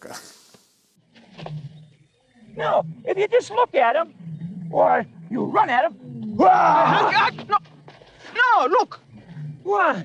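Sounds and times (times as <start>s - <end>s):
lion growling: 1.1s - 10.0s.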